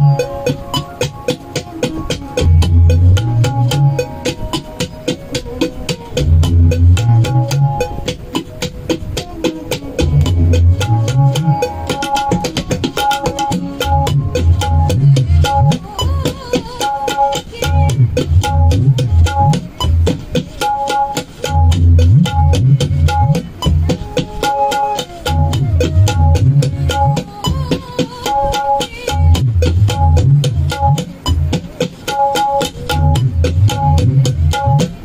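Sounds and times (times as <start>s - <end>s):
crisp high drum strokes: 0.0s - 35.0s
tabla drumming: 0.0s - 35.0s.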